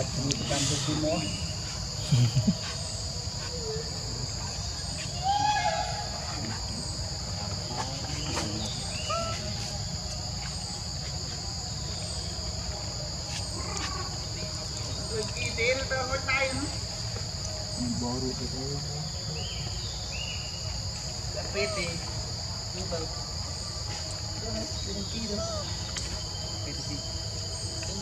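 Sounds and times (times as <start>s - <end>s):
insect chorus buzzing: 0.0s - 28.0s.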